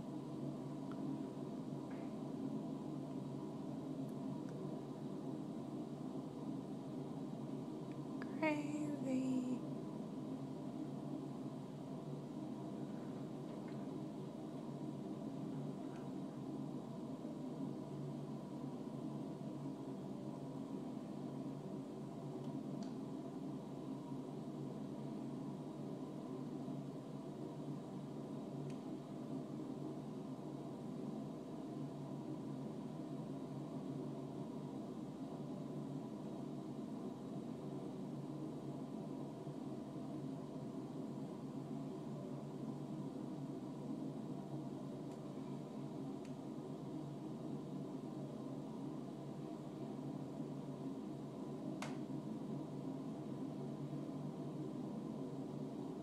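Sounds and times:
indoor room hum: 0.0s - 56.0s.

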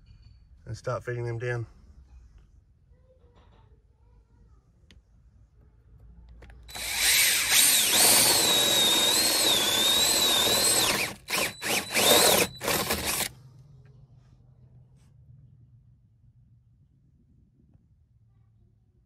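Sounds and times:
cordless drill boring into wood: 6.7s - 13.3s.

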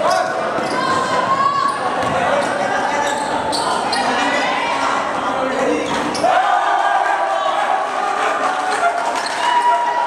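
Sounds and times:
people calling out: 0.0s - 10.0s.

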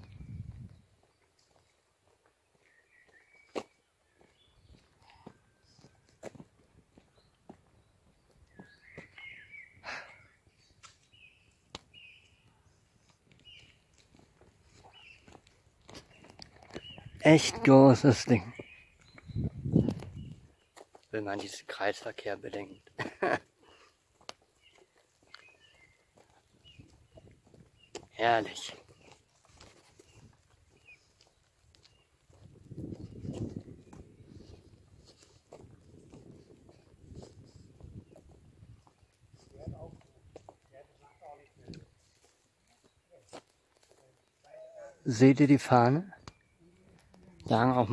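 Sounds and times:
footsteps walking: 0.1s - 9.4s, 13.0s - 17.1s, 18.6s - 21.5s, 24.0s - 40.7s, 41.8s - 44.5s
faint bird chirps: 2.5s - 6.1s, 7.1s - 12.8s, 18.4s - 20.7s.

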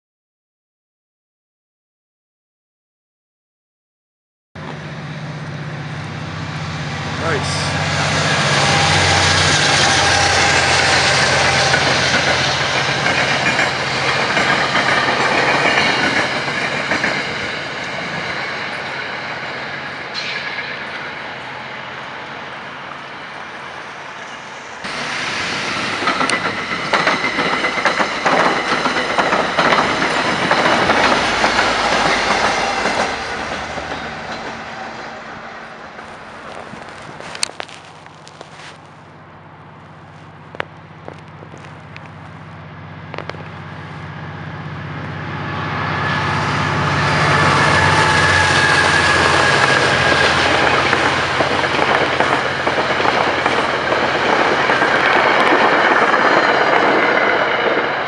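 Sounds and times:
train wheels clacking on rails: 7.2s - 21.1s, 24.8s - 35.0s, 46.3s - 58.0s.

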